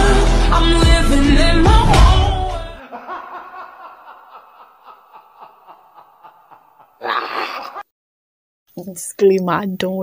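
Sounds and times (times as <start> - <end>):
woman laughing: 2.8 - 7.8.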